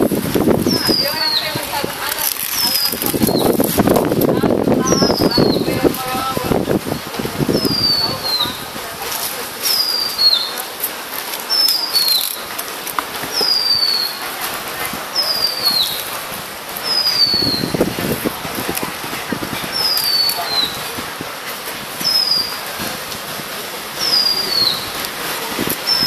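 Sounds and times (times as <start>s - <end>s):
foil crinkling: 0.8s - 4.1s.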